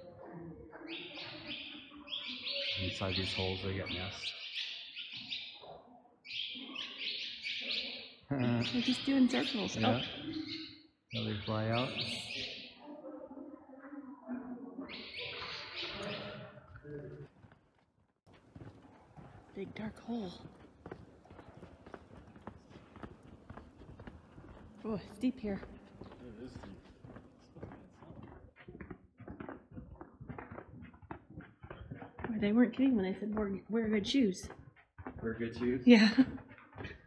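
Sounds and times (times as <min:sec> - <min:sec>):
swallows chirping: 0:00.9 - 0:05.6, 0:06.3 - 0:12.8, 0:18.4 - 0:27.8
footsteps on paved trail: 0:18.3 - 0:37.0.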